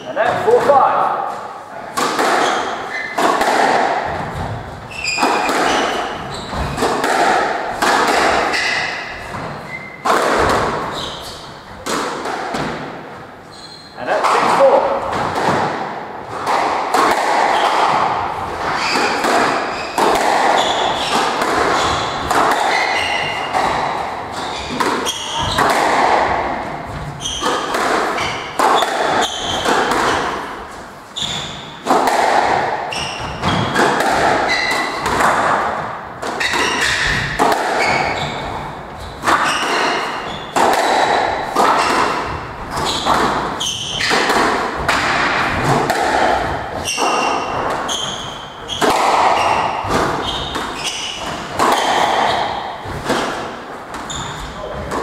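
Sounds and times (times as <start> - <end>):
squash ball thuds: 2.0 - 11.0, 11.8 - 13.1, 14.3 - 55.0
shoes squeaking on wooden floor: 2.3 - 3.3, 4.0 - 7.1, 7.9 - 11.9, 13.4 - 15.2, 17.5 - 31.8, 32.9 - 35.4, 36.4 - 45.8, 46.4 - 53.2, 53.9 - 55.0.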